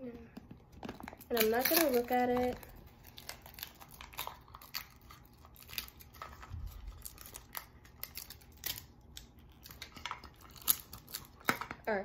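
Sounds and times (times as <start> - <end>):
plastic wrapping crinkling: 0.4 - 12.0.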